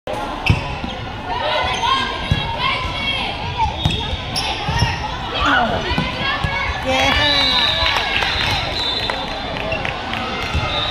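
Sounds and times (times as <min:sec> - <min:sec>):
voices echoing in a hall: 0:00.2 - 0:10.9.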